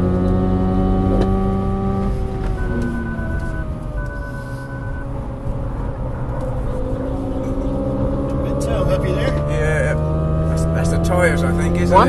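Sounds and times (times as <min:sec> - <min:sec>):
car engine accelerating: 0:00.0 - 0:12.0.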